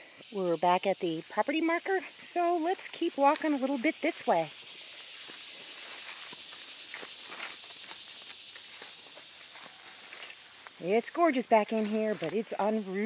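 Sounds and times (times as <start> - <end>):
high insect buzz: 0.0 - 13.0
footsteps swishing through grass: 2.4 - 13.0.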